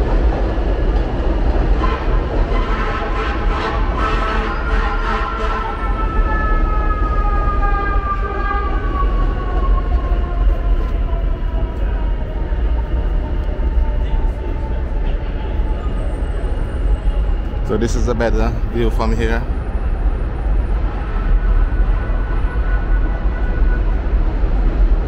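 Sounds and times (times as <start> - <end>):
elevated train whine: 0.0 - 25.0
low street rumble: 0.0 - 25.0.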